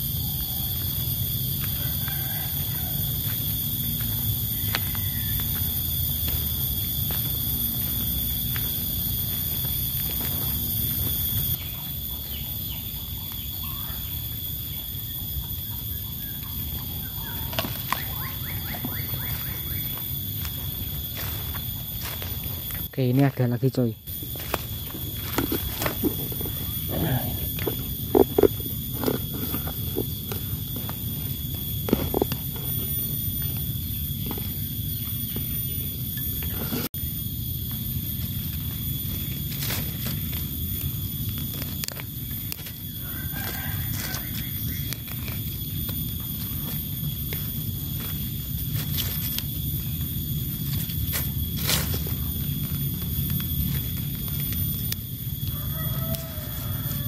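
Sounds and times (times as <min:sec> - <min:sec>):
constant high-pitched whine: 0:00.0 - 0:57.0
footsteps crunching on dry leaves: 0:00.1 - 0:12.4, 0:17.2 - 0:23.4, 0:24.1 - 0:33.0, 0:37.4 - 0:57.0
steady low rumble: 0:02.5 - 0:12.1.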